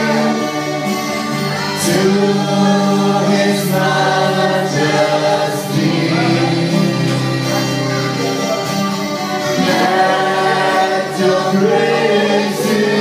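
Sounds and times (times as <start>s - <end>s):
group singing gospel song: 0.0s - 13.0s.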